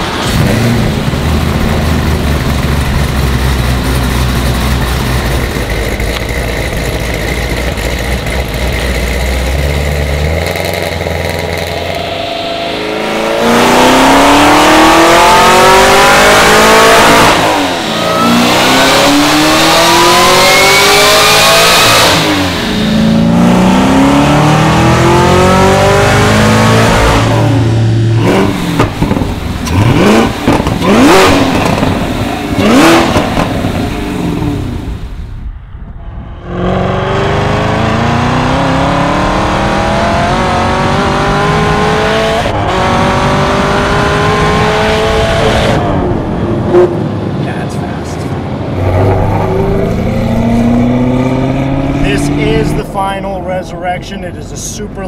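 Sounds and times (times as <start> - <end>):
engine idling and revving: 0.0 - 55.0
high supercharger whine: 0.0 - 55.0.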